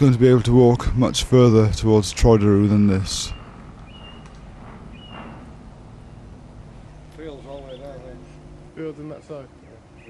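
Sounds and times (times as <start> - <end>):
low outdoor rumble: 0.0 - 10.0
bird whistling call: 3.3 - 5.5.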